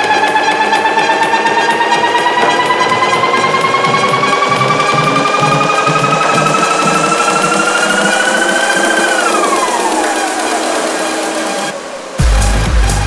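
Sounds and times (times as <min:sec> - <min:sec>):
synth tone sliding in pitch: 0:00.0 - 0:13.0
tech house music: 0:00.0 - 0:13.0.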